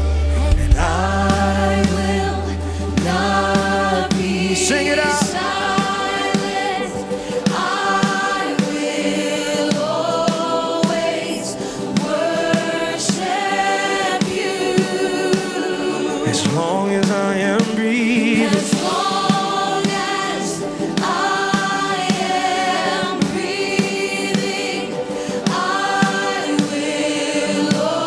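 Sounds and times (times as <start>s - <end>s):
backing vocalists singing: 0.0s - 28.0s
lead singer: 0.0s - 28.0s
steady drum beat: 0.0s - 28.0s.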